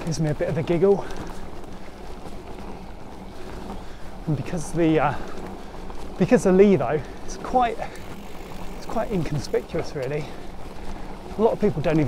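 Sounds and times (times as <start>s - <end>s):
bike tyres rolling over trail: 0.0s - 12.0s.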